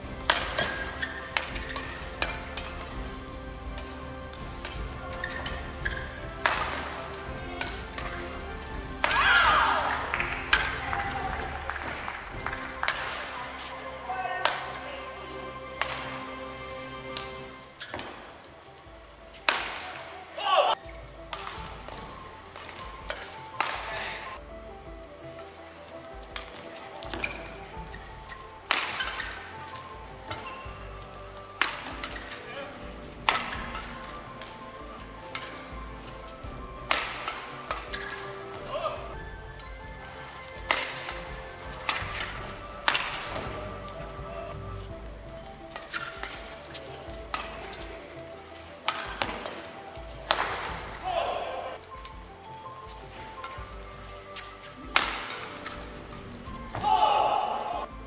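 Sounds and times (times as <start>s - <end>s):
rackets hitting shuttlecock: 0.0s - 18.6s, 19.3s - 58.0s.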